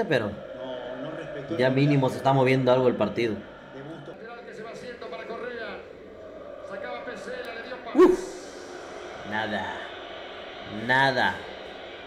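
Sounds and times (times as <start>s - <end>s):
male commentator talking: 0.0s - 5.8s, 9.2s - 9.8s, 10.7s - 11.4s.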